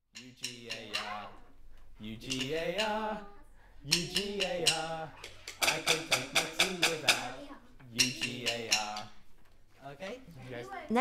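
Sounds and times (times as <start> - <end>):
man singing quietly: 0.3 - 9.1.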